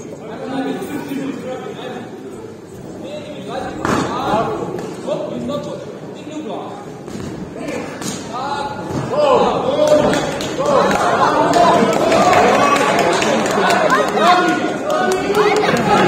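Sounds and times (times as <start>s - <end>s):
voices calling out in a hall: 0.0s - 16.0s.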